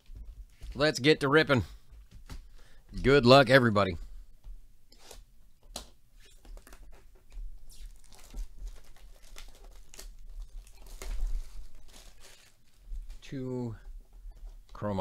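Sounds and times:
plastic wrap crinkling: 0:06.2 - 0:13.4.

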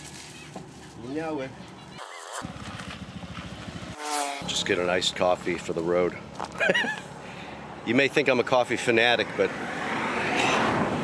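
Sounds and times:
scooter engine puttering: 0:01.7 - 0:07.2.

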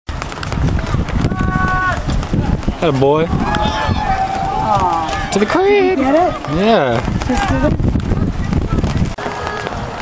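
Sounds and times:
low rumbling: 0:00.1 - 0:10.0
person shouting: 0:01.3 - 0:02.0.

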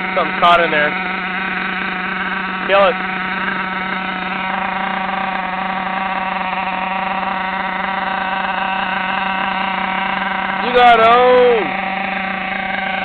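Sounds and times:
small nitro engine idling: 0:00.0 - 0:13.0.

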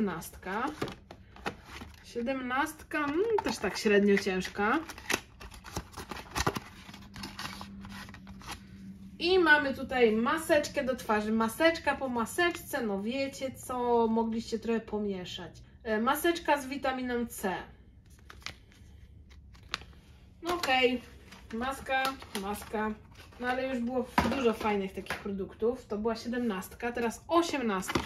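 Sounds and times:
packet rustling against card: 0:03.1 - 0:08.7, 0:18.0 - 0:23.6.

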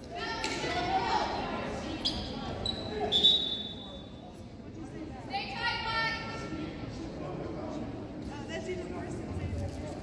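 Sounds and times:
chatter in a gym: 0:00.0 - 0:10.0
referee's whistle: 0:02.1 - 0:04.1.

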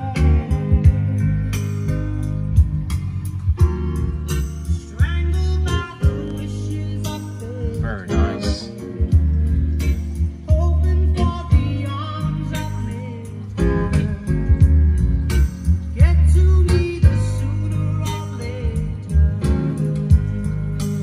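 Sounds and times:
song with singing and guitar: 0:00.0 - 0:21.0
steady bass line: 0:00.0 - 0:21.0.

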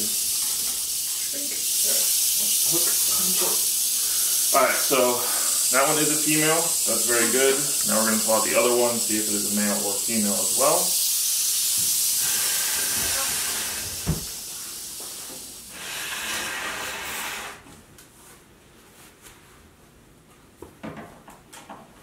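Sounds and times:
rattlesnake rattling: 0:00.0 - 0:15.0
thump: 0:14.0 - 0:14.3.

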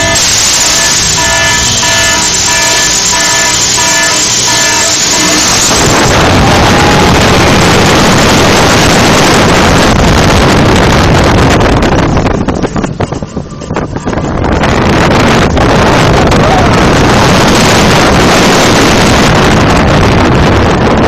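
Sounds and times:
repeated electronic tones: 0:00.0 - 0:08.9
roller coaster track noise: 0:00.0 - 0:21.0
wind rushing on microphone: 0:00.0 - 0:21.0.

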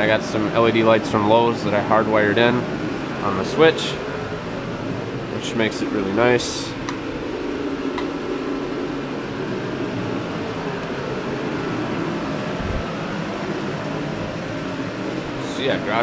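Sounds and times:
heater fan whirring: 0:00.0 - 0:16.0.

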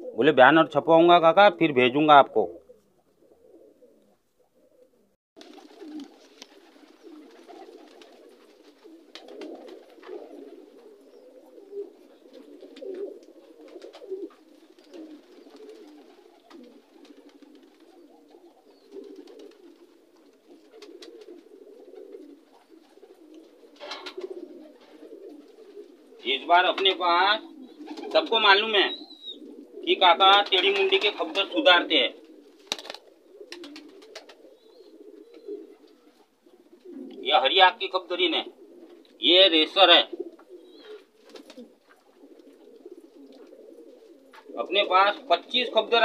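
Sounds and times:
pigeons cooing: 0:00.0 - 0:00.4, 0:01.9 - 0:46.0.

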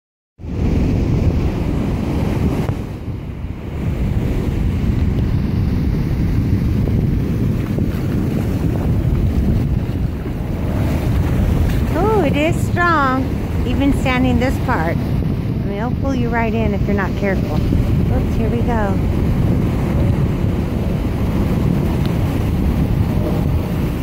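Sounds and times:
waves breaking on beach: 0:00.4 - 0:24.0
wind buffeting microphone: 0:00.4 - 0:24.0.

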